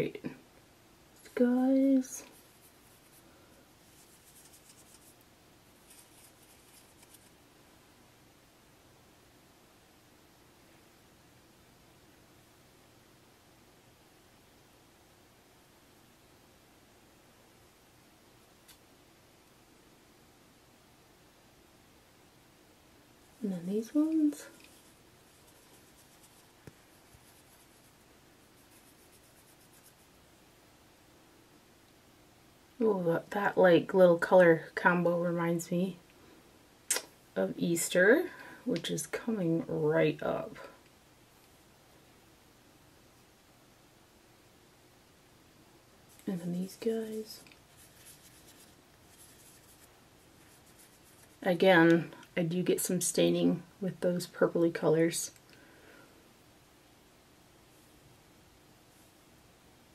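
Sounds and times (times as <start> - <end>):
fingertips rubbing eyeshadow: 3.8 - 5.2, 5.8 - 7.4, 23.6 - 30.2, 46.1 - 51.4
small click: 36.9 - 37.1.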